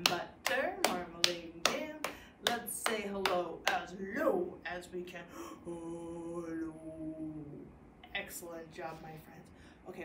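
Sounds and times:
hands clapping a beat: 0.0s - 3.8s
woman chanting: 0.0s - 10.0s.

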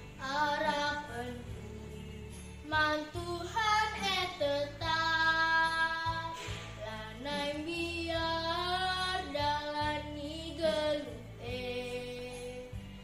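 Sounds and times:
girl singing with vibrato: 0.0s - 13.0s.

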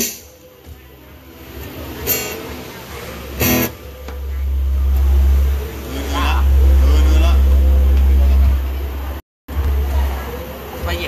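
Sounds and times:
deep steady rumble: 3.3s - 10.7s.

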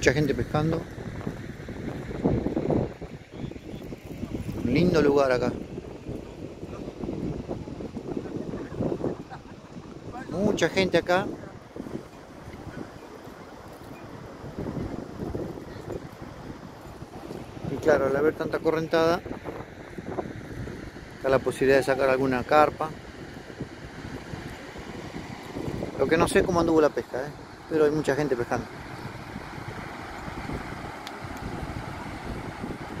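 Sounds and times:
rushing water from spillway: 0.0s - 33.0s
wind buffeting microphone: 0.0s - 33.0s.

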